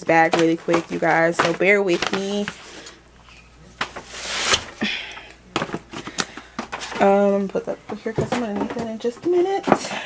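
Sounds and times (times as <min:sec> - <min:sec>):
grocery bag rustling: 0:00.0 - 0:03.0.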